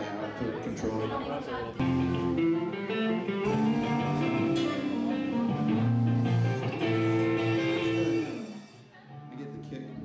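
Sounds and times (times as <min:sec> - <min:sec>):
electric guitar sustained notes: 0:01.8 - 0:08.9
rock band playing: 0:01.8 - 0:08.9.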